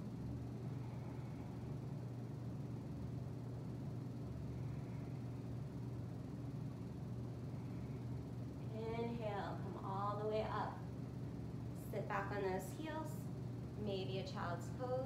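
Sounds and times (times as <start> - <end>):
fans humming: 0.0 - 15.0.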